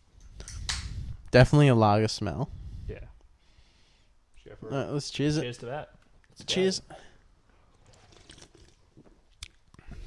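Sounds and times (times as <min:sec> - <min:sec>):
sipping and swallowing: 0:07.7 - 0:09.8.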